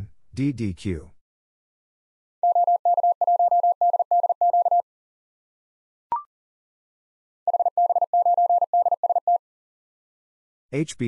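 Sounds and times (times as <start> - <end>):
morse code tone: 2.4 - 4.8, 7.5 - 9.4.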